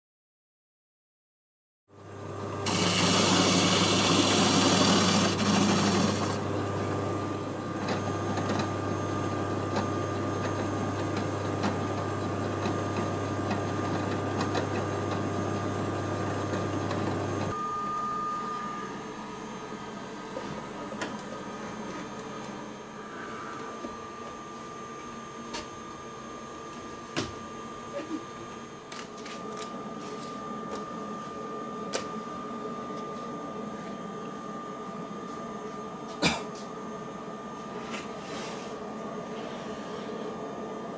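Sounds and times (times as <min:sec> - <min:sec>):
spindle sander humming: 0:02.4 - 0:09.0
wood grinding against sanding drum: 0:02.7 - 0:06.4.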